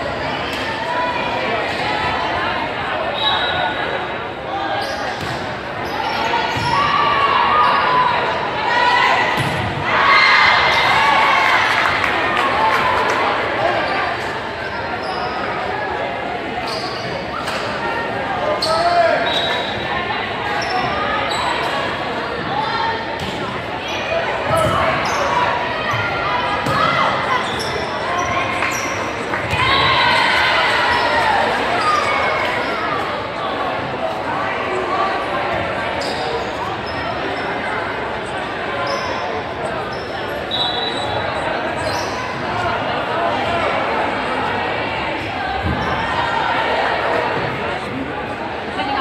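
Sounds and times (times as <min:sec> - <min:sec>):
sneaker squeaks on court: 0:04.8 - 0:06.9, 0:16.6 - 0:17.5, 0:26.6 - 0:29.6, 0:36.0 - 0:37.5, 0:38.8 - 0:42.4.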